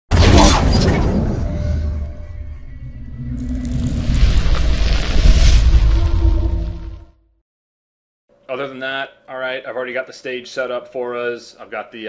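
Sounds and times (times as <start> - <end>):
low rumble: 0.4 - 7.4.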